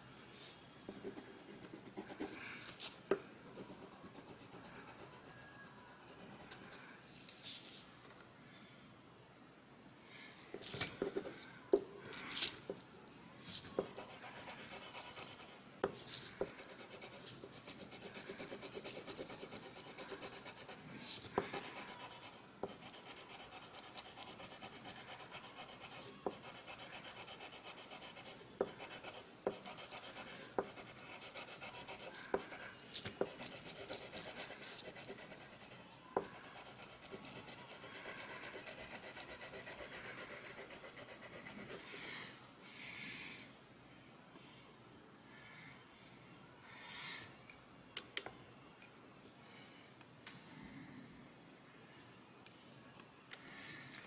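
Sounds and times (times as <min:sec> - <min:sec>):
pencil shading on paper: 0:13.8 - 0:41.9.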